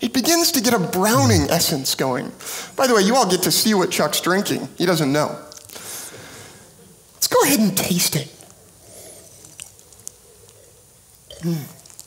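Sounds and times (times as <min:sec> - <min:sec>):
sipping and mouth sounds: 0:01.2 - 0:01.6.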